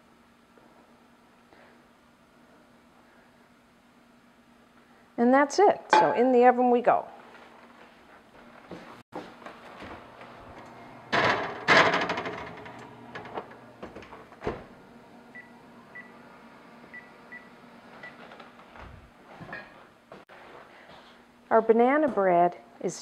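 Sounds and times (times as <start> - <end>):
oven door opening and shutting: 9.8 - 16.9.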